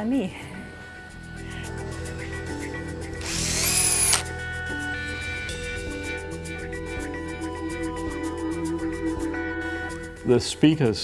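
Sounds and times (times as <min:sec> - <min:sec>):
drill-driver motor whine: 0:03.2 - 0:04.3.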